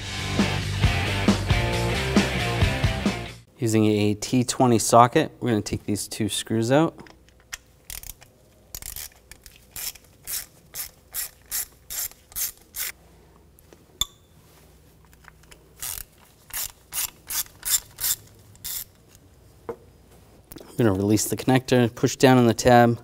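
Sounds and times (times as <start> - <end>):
hand ratchet clicking: 7.3 - 13.0, 15.2 - 19.0.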